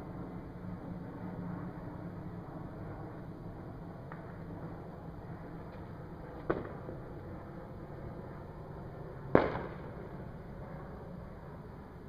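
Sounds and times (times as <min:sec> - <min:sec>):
low background noise: 0:00.0 - 0:12.0
firework bang: 0:09.3 - 0:09.9.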